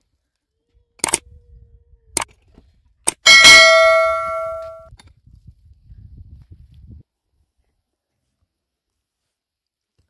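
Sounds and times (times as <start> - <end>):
metal tool striking stony ground: 3.1 - 4.9.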